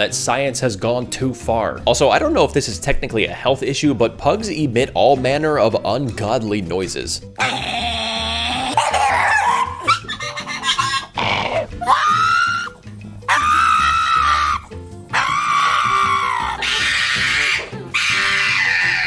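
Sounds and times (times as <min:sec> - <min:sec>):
background music: 0:00.0 - 0:19.0
dogs high-pitched cries: 0:08.7 - 0:19.0.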